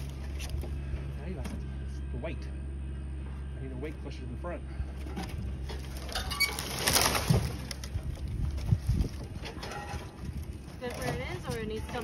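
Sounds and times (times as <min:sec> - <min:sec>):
tree limbs rustling and crackling: 0:00.0 - 0:01.1, 0:04.8 - 0:12.0.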